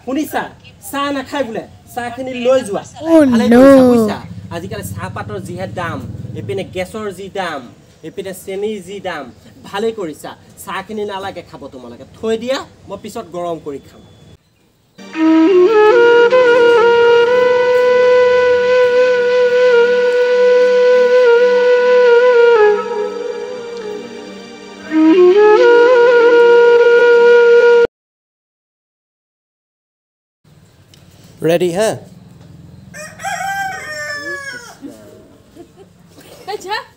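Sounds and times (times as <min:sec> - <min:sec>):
flute-like wind instrument note: 0:03.0 - 0:06.2, 0:15.0 - 0:27.9
rooster crowing: 0:32.7 - 0:35.3.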